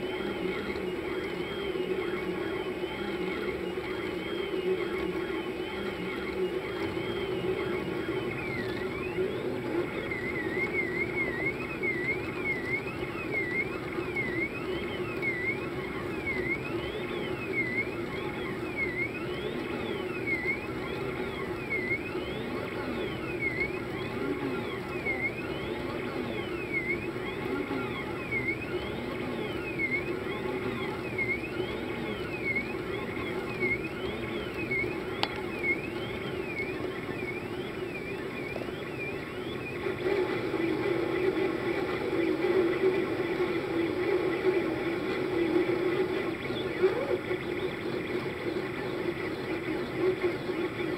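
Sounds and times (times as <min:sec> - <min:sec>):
steady low hum: 0:00.0 - 0:50.9
stepper motors whining: 0:00.0 - 0:50.9.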